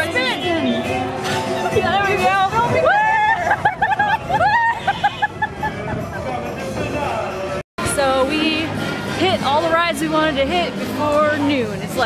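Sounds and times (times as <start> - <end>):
women whooping: 2.7 - 5.2
women laughing: 2.9 - 6.5.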